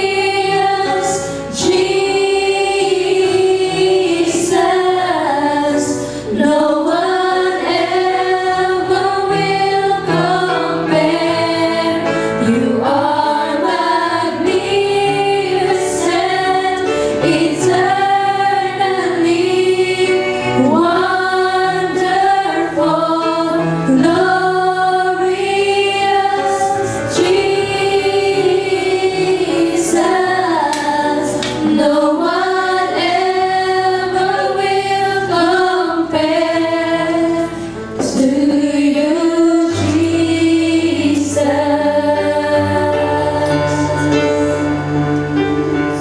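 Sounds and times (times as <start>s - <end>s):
women singing worship song: 0.0s - 44.6s.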